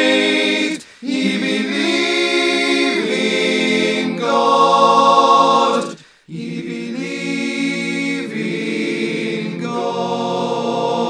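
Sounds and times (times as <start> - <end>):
choir singing unaccompanied: 0.0 - 11.0.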